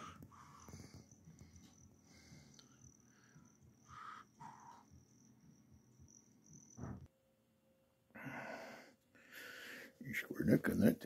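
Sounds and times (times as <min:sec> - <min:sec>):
faint high-pitched chirring: 0:00.0 - 0:08.9.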